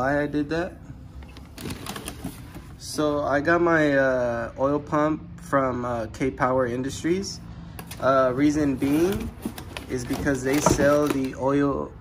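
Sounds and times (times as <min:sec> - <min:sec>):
plastic and cardboard rustling: 0:01.3 - 0:02.8, 0:07.8 - 0:11.6.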